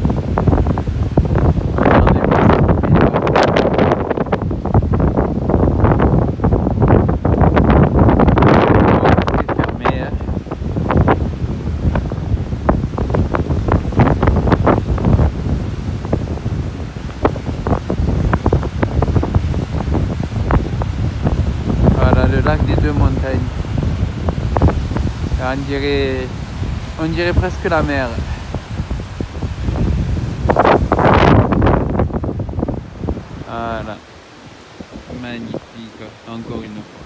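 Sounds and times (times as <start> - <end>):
waves washing on shore: 0.0 - 37.0
wind buffeting microphone: 0.0 - 37.0.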